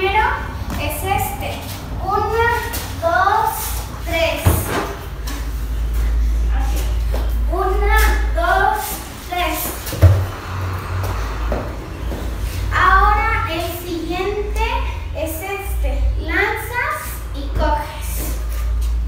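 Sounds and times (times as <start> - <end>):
girl speaking: 0.0 - 5.0, 6.5 - 10.0, 12.7 - 18.5
steady low rumble: 5.1 - 16.4.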